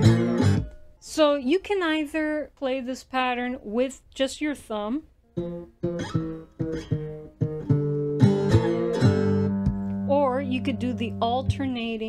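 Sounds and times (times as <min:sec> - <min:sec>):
slide guitar blues phrase: 0:00.0 - 0:00.6, 0:05.4 - 0:12.0.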